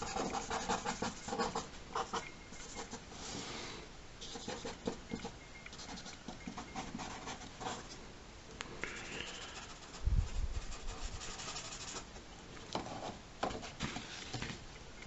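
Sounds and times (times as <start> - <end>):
marker scratching on paper: 0.0 - 3.0, 4.2 - 7.9, 9.0 - 12.0.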